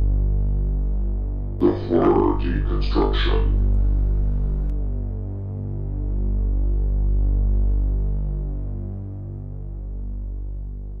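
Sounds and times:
throbbing synthesizer drone: 0:00.0 - 0:10.9.

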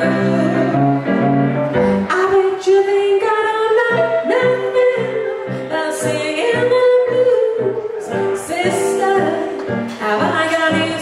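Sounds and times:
stage keyboard: 0:00.0 - 0:11.0.

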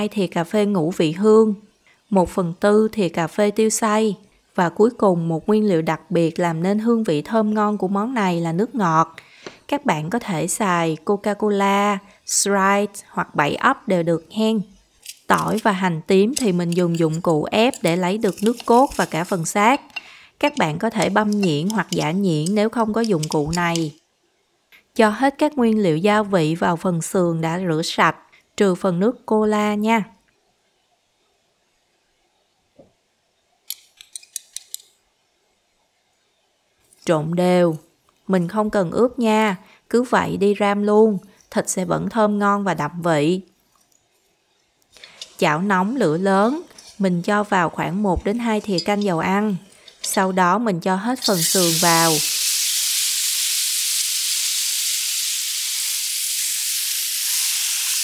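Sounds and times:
ribs sizzling in hot oil: 0:16.4 - 0:19.8, 0:51.2 - 0:58.0.

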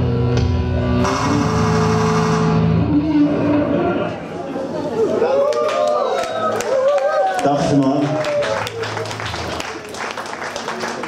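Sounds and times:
live rock music: 0:00.0 - 0:03.7
electric bass guitar: 0:00.0 - 0:04.2.

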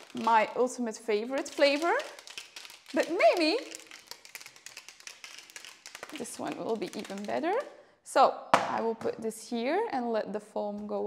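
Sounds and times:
shaker bottle being shaken: 0:00.0 - 0:07.7.

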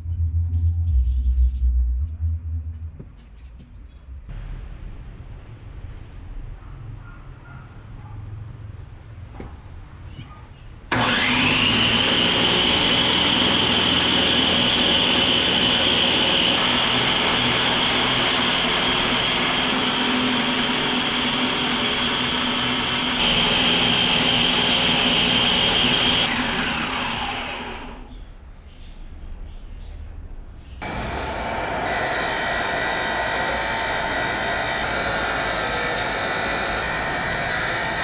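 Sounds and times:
steel ground on abrasive belt: 0:10.9 - 0:28.0, 0:30.8 - 0:38.0
belt grinder motor whine: 0:10.9 - 0:28.1, 0:30.8 - 0:38.0.

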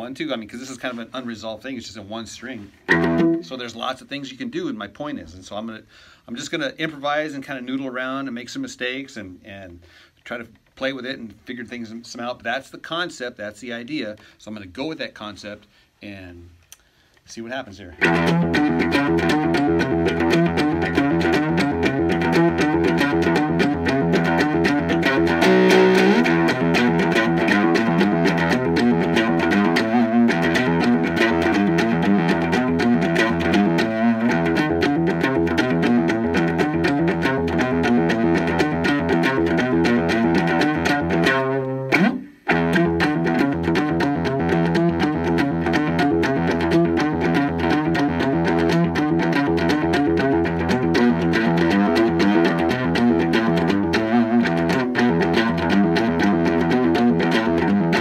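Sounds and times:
amplified cigar box guitar groove: 0:00.0 - 0:15.5, 0:16.3 - 0:58.0.

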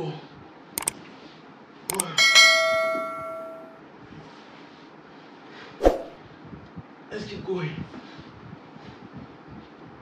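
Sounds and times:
mouse click: 0:00.8 - 0:01.0
bright bell-like chime: 0:02.2 - 0:03.8.

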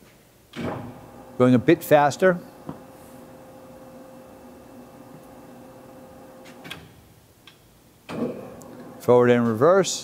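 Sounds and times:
lathe running hum: 0:00.6 - 0:06.6.

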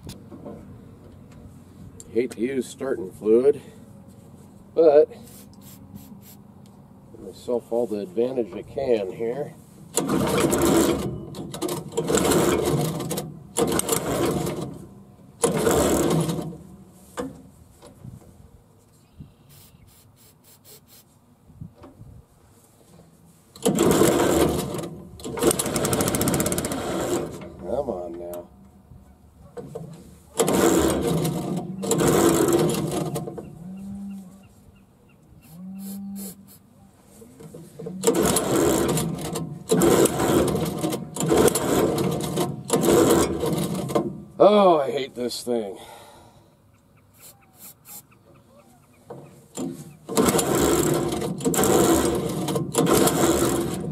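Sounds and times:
small gas engine sputtering: 0:09.9 - 0:14.8, 0:15.4 - 0:16.6, 0:23.5 - 0:27.6, 0:30.3 - 0:33.3, 0:37.9 - 0:44.0, 0:49.5 - 0:53.9.

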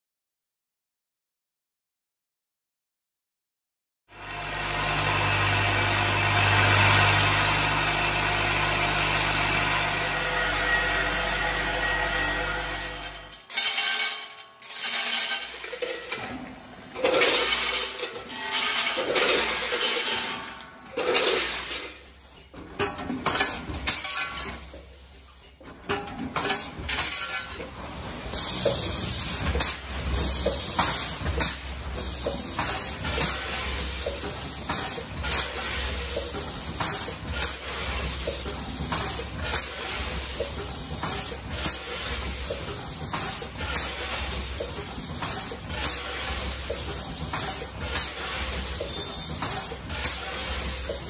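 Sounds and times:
packaging machine running: 0:04.3 - 0:25.0, 0:25.6 - 0:51.0
machine hisses and clanks: 0:12.6 - 0:51.0.

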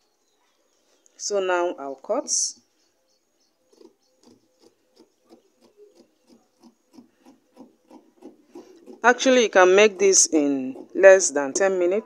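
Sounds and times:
scissors snipping fabric: 0:03.7 - 0:11.7.

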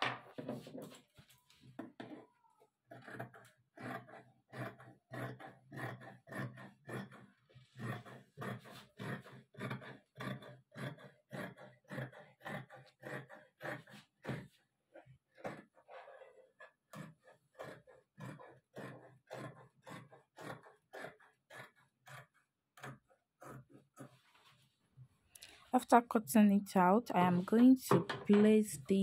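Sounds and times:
scissors cutting fabric: 0:02.9 - 0:24.2.

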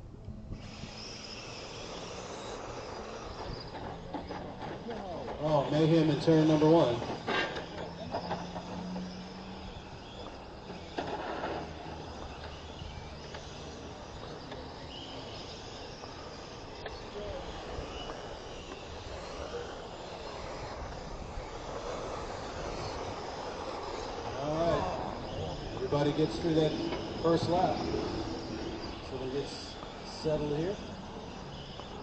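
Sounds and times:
rc car motors whining: 0:00.0 - 0:32.0
faint voices: 0:01.0 - 0:32.0.

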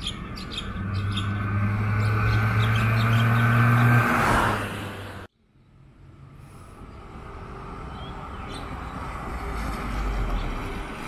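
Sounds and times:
car driving past: 0:00.6 - 0:05.3.

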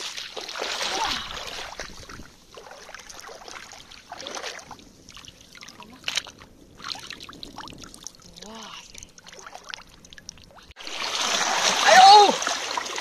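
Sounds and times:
shallow water lapping: 0:00.0 - 0:13.0
surf washing over rocks: 0:10.8 - 0:13.0
person exclaiming: 0:11.7 - 0:12.4.

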